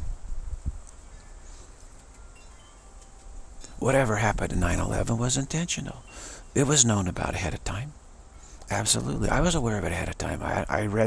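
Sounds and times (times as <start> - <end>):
faint chimes ringing: 0.9 - 9.8
man speaking: 3.6 - 8.0, 8.7 - 11.0.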